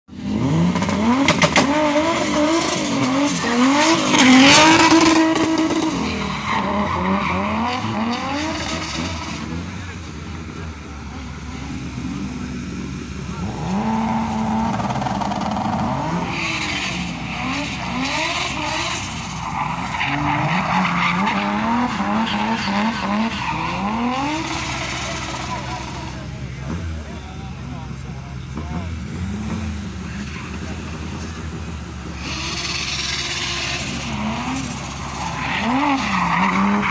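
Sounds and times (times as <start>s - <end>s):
car engine revving: 0.1s - 36.9s
tyres skidding and squealing: 0.1s - 36.9s.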